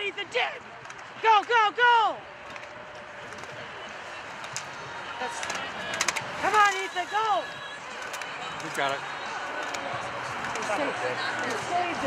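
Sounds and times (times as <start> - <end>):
man shouting: 1.2 - 2.2.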